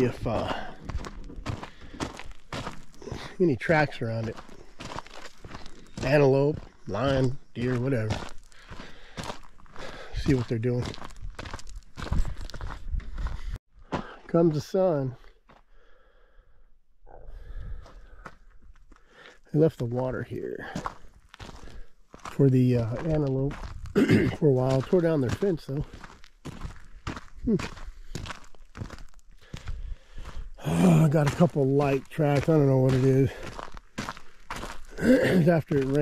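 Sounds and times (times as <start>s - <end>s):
footsteps on dry ground: 0.0s - 16.1s, 17.4s - 36.0s.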